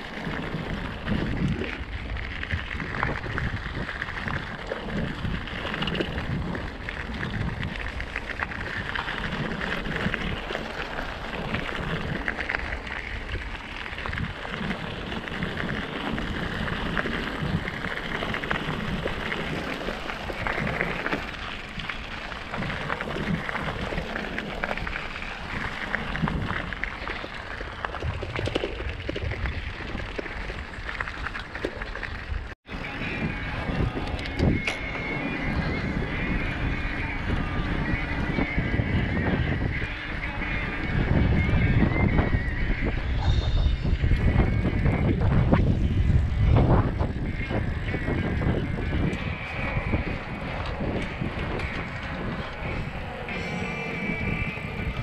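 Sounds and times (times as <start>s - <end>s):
bicycle rattling: 0.0s - 55.0s
tyre and road rumble: 0.0s - 55.0s
wind rushing over microphone: 0.0s - 55.0s.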